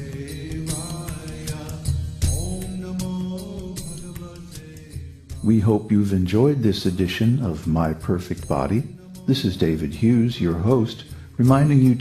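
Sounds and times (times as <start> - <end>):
devotional chant music: 0.0 - 12.0
percussion strikes: 0.0 - 12.0.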